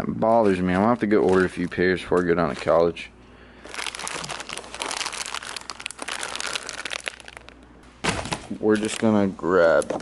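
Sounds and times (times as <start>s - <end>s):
plastic bag crinkling: 3.6s - 7.6s.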